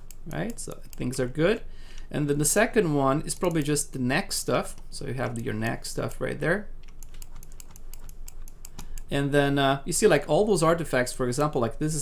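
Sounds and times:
rapid computer control clicking: 3.3s - 3.8s, 6.8s - 9.1s.

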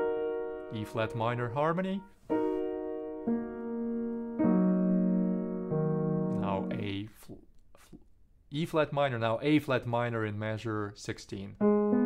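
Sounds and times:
piano chords: 0.0s - 7.1s, 11.6s - 12.0s.

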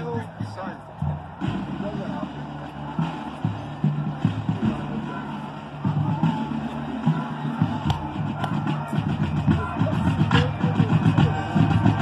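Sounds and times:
marching band brass: 0.0s - 12.0s.

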